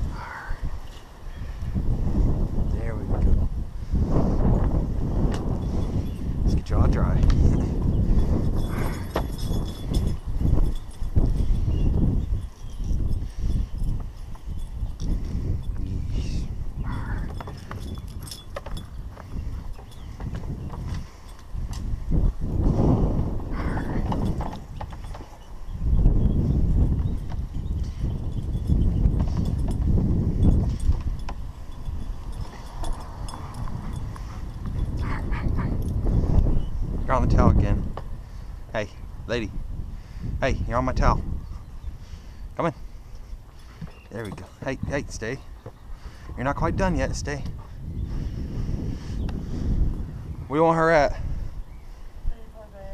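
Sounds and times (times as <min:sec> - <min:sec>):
wind buffeting microphone: 0:00.0 - 0:52.9.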